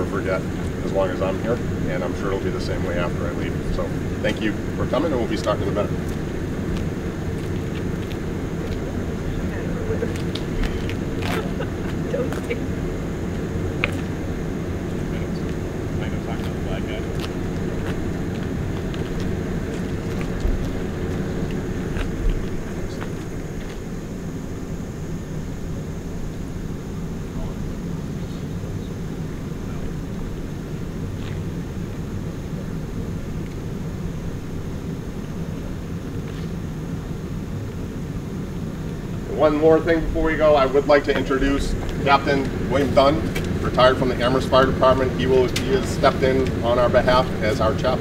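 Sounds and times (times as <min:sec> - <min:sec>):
faint voices: 0:00.0 - 0:24.1, 0:25.9 - 0:30.6
engine rumbling: 0:00.0 - 0:48.0.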